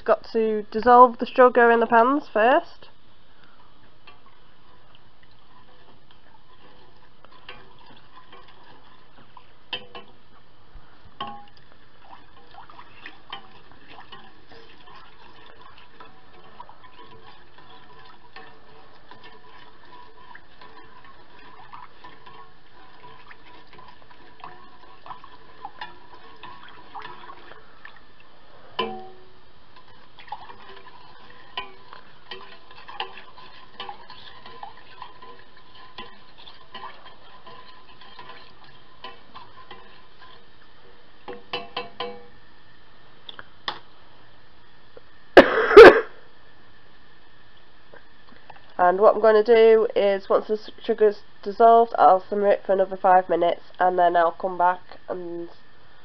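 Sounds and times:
spoon stirring in a saucepan: 2.8s - 44.0s
spoon knocking on a pan: 28.8s - 29.3s.

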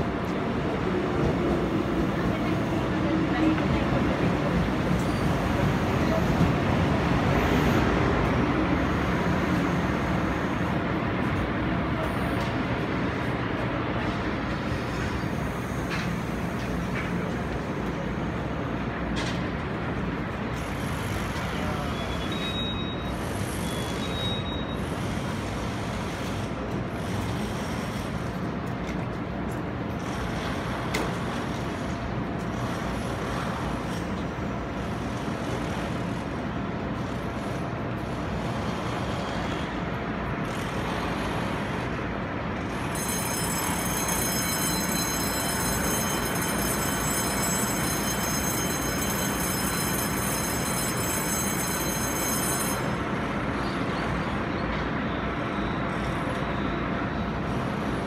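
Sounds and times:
train equipment hum and rumble: 0.0s - 58.0s
high multi-tone whine: 42.6s - 58.0s.

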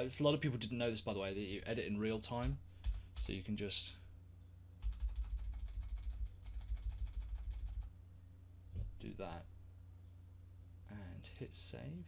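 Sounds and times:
rapid computer keyboard keystrokes: 2.4s - 3.4s, 4.8s - 7.9s.

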